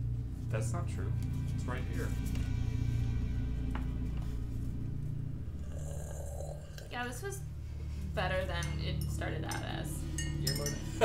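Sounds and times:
ambient music drone: 0.0s - 11.0s.

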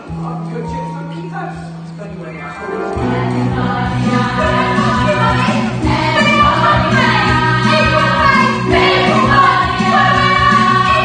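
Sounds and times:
keyboard accompaniment: 0.0s - 11.0s
ensemble singing: 2.6s - 11.0s.

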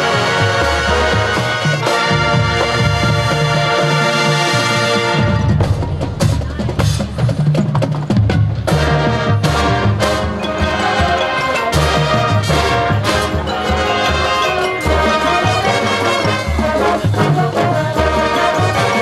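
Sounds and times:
brass chords: 0.0s - 7.4s, 8.2s - 19.0s
drumline hits: 0.0s - 19.0s
marching band playing: 0.0s - 19.0s.

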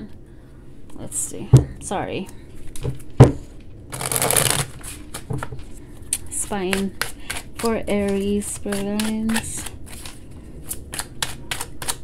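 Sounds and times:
cards being shuffled: 3.9s - 5.6s, 7.2s - 12.0s.

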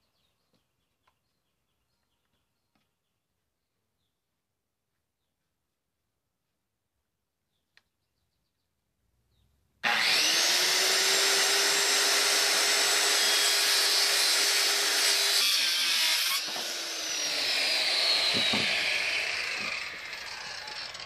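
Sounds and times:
circular saw cutting wood: 9.8s - 21.0s.

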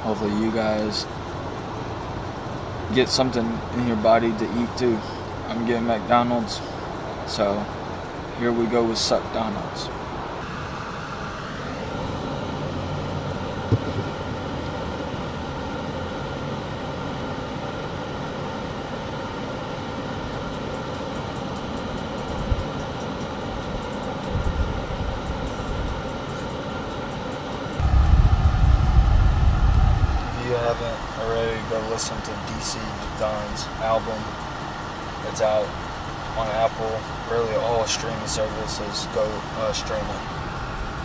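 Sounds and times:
car cabin engine hum: 5.6s - 41.0s.

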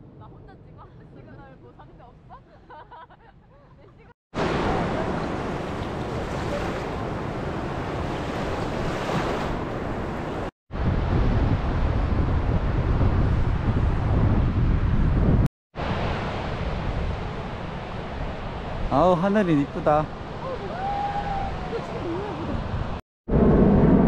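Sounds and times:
waves washing on sandy shore: 4.4s - 10.5s
wind buffeting microphone: 4.7s - 18.9s.

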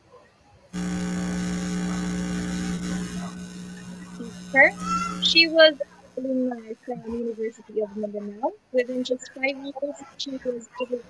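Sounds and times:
electrical mains hum: 0.8s - 7.3s.

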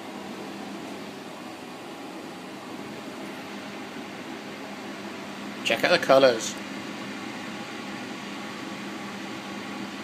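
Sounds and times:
appliance fan hum and hiss: 0.0s - 10.0s.

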